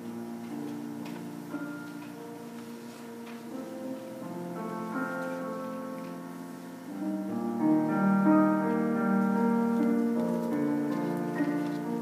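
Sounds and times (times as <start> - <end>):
grand piano slow chords: 0.0 - 12.0.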